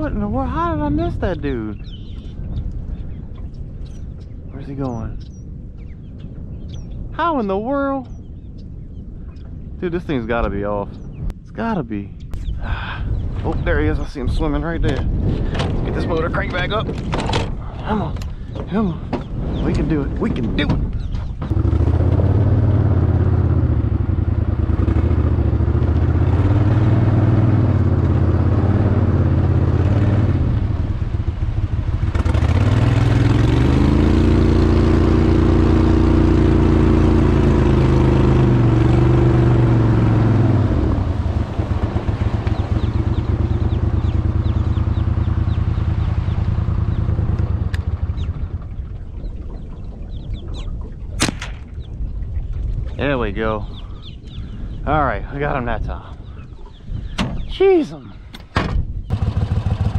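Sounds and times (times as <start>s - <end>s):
outboard motor running: 21.4s - 51.0s, 59.1s - 59.9s
sharp click: 51.2s - 51.8s.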